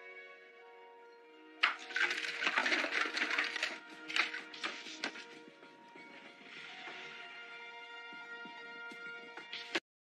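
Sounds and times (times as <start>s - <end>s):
soft music: 0.0s - 9.8s.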